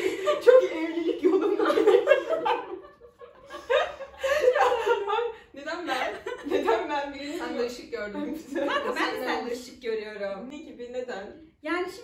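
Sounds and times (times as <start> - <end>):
women laughing: 0.0 - 7.6.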